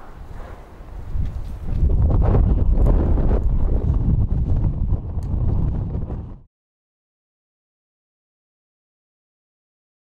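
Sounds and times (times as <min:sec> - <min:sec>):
strong wind buffeting microphone: 0:00.0 - 0:06.5.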